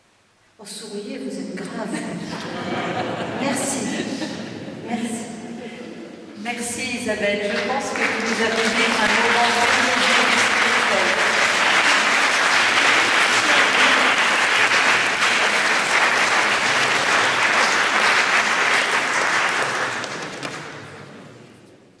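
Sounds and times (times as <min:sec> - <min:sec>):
audience applauding: 0:07.4 - 0:21.3.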